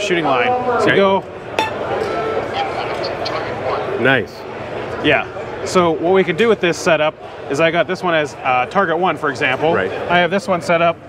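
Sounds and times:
crowd murmur: 0:00.6 - 0:05.7
steel plate struck with metallic ring: 0:01.6 - 0:02.3.

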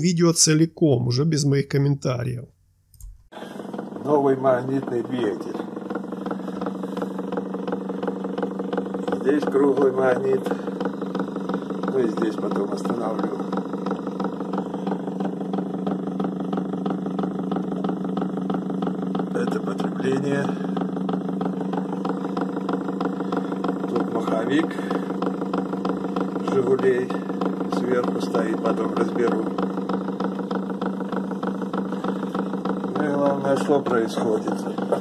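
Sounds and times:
spinning wheel motor hum: 0:03.0 - 0:35.0
fast ticking rattle: 0:03.5 - 0:35.0.

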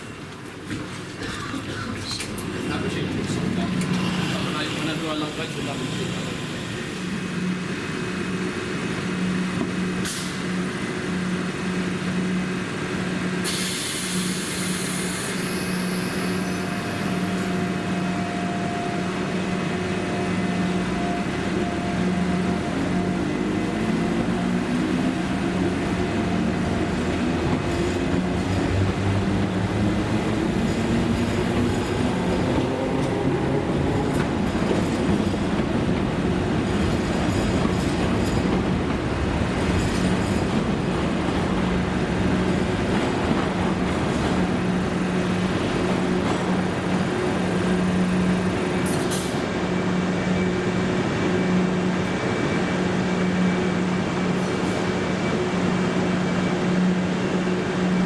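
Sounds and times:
train traction motors whining: 0:01.7 - 0:58.0
air hiss: 0:13.4 - 0:15.9.

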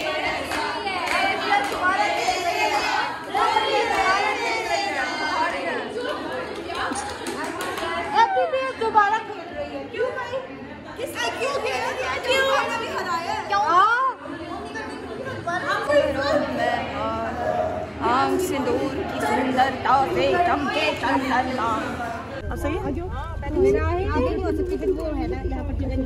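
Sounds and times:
women chattering: 0:07.8 - 0:26.0.

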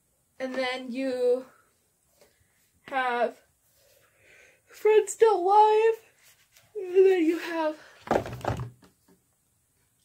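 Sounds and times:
plastic case being handled: 0:08.0 - 0:09.0.

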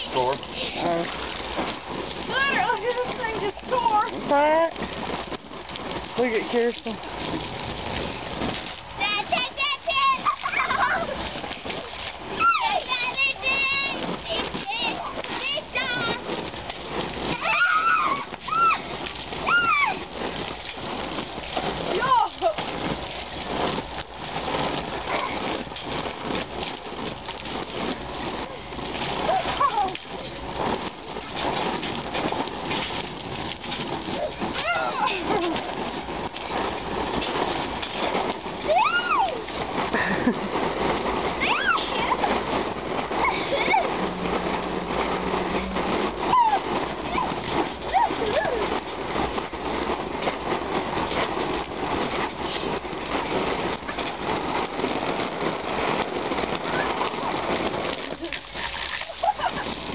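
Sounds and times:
water splashing on trampoline mat: 0:00.0 - 0:59.9
children squealing and shouting: 0:12.4 - 0:13.2, 0:17.4 - 0:20.1, 0:38.7 - 0:39.4, 0:41.4 - 0:42.3.

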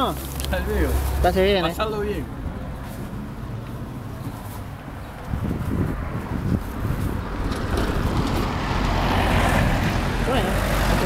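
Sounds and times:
vehicle passing on road: 0:00.0 - 0:11.0
wind rumble on microphone: 0:04.0 - 0:11.0.

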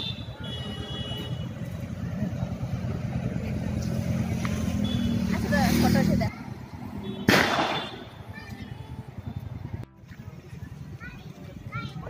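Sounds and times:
vehicle engine humming: 0:00.0 - 0:12.0.

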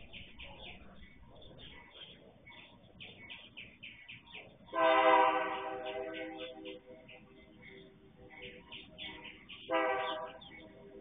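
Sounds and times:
birds chirping: 0:00.0 - 0:11.0
locomotive air horn blast: 0:04.8 - 0:06.3, 0:09.7 - 0:10.4.

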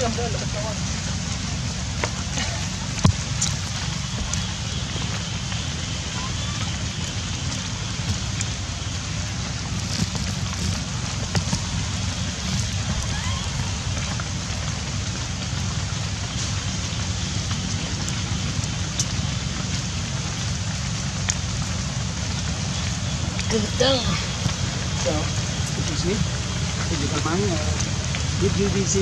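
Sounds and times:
low rumble: 0:00.0 - 0:29.0
sharp drips: 0:00.0 - 0:29.0
steady rain hiss: 0:00.0 - 0:29.0.

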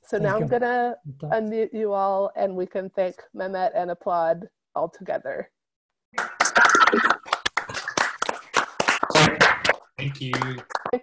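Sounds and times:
people clapping: 0:06.1 - 0:11.0.

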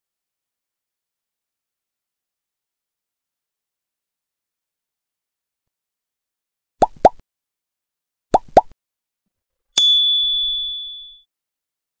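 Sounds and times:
bright bell ding: 0:09.8 - 0:11.2.

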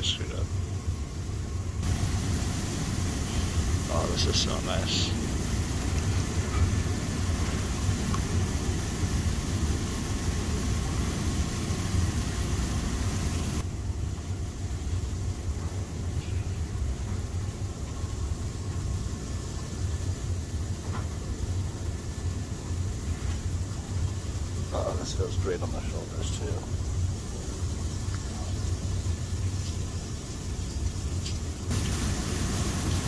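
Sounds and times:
low pump rumble: 0:00.0 - 0:33.0
bubbling water churning: 0:01.8 - 0:13.6.

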